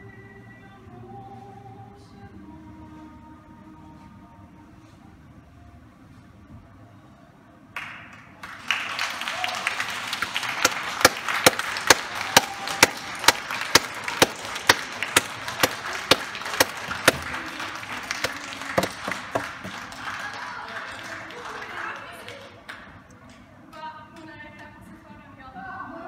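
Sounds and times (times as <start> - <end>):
loud close clapping: 7.8 - 23.5
people applauding: 7.8 - 23.5
person cheering: 11.9 - 14.8.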